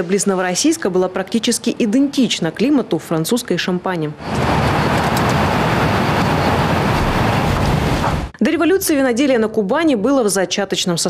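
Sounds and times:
loud rushing noise: 4.2 - 8.4
tractor engine rumble: 4.2 - 8.4.

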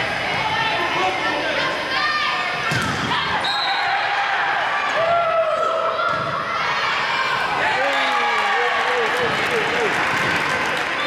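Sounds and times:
voices in echoing gym: 0.0 - 10.0.

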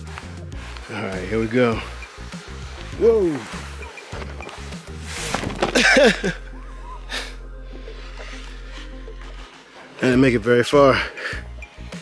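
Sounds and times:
background music low note: 0.1 - 12.0
handling noise rustles: 2.8 - 6.2
man laughing: 5.6 - 7.4.

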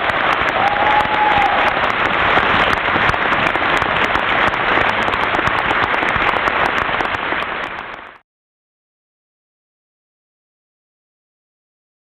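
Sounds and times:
audience applauding: 0.0 - 8.2.

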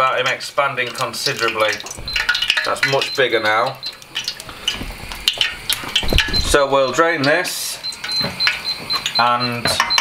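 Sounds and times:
hot fat crackling: 0.0 - 10.0.

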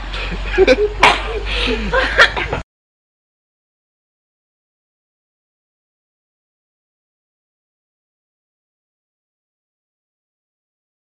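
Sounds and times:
laughter: 0.1 - 2.6.

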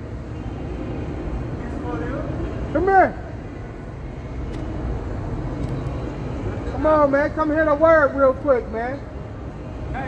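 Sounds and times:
traffic rumble: 0.0 - 10.0.

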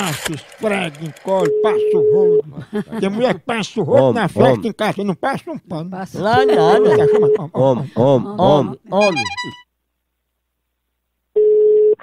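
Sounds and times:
telephone ringing tone: 1.3 - 2.4, 6.3 - 7.4, 9.0 - 9.6.

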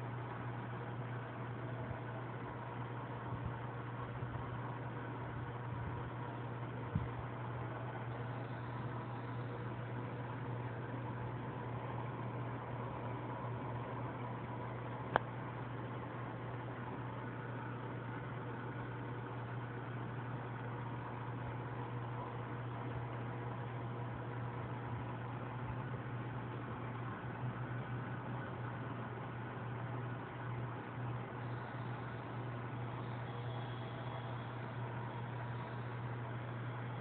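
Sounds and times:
aquarium equipment hum and hiss: 0.0 - 37.0.

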